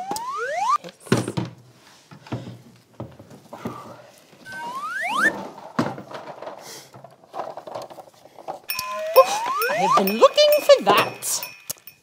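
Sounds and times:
bell-like ringing: 0:08.7 - 0:12.0.

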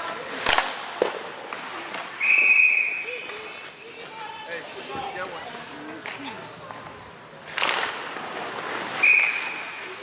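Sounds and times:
referee's whistle blast: 0:02.2 - 0:03.3, 0:09.0 - 0:09.8.

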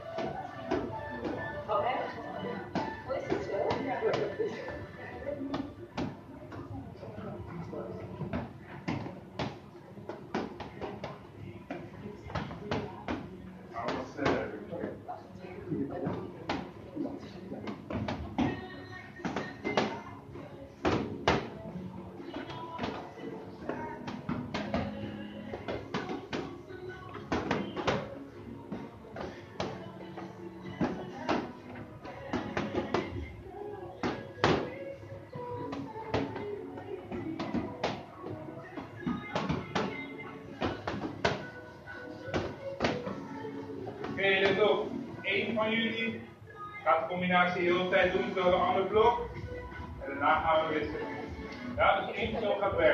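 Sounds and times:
background music: 0:00.0 - 0:52.9.

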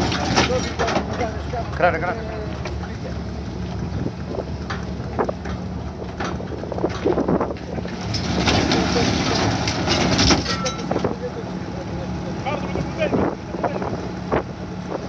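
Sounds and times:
diesel engine running: 0:00.0 - 0:15.0.

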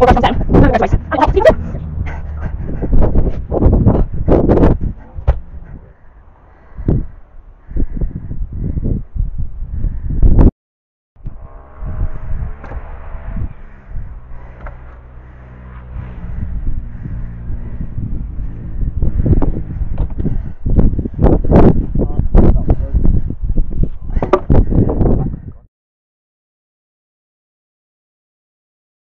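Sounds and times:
low rumbling: 0:00.0 - 0:10.5, 0:11.2 - 0:25.6
steady low hum: 0:11.2 - 0:22.0
heavy thumps of logs loaded: 0:24.2 - 0:24.6.

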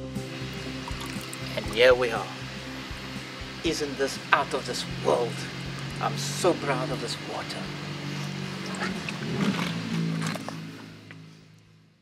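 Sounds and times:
soft background music: 0:00.0 - 0:11.5
running water: 0:00.2 - 0:11.0
man's voice: 0:01.5 - 0:02.4, 0:03.6 - 0:07.7.

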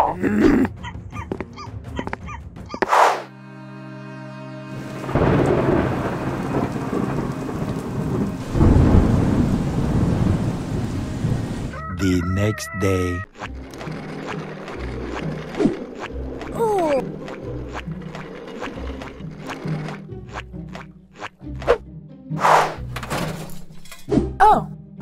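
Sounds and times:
steady rain: 0:04.8 - 0:11.8
thunder rumble: 0:04.8 - 0:11.8.

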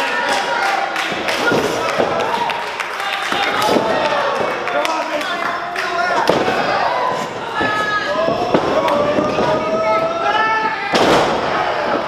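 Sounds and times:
crowd shouting and chatter: 0:00.0 - 0:12.0.

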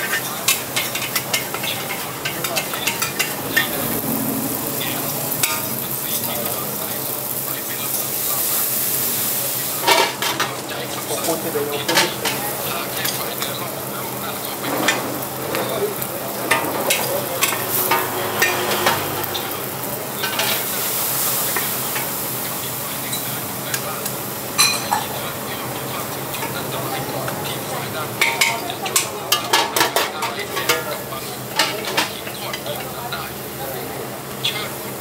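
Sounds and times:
food sizzling in a wok: 0:00.0 - 0:35.0
metal spatula scraping wok: 0:00.8 - 0:07.4, 0:16.4 - 0:20.7.

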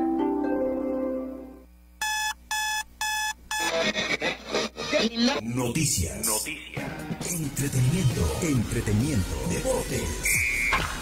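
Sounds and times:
music bed: 0:00.0 - 0:01.7
short electronic beeps: 0:02.0 - 0:03.7, 0:10.3 - 0:10.8
promo music: 0:03.7 - 0:11.0.

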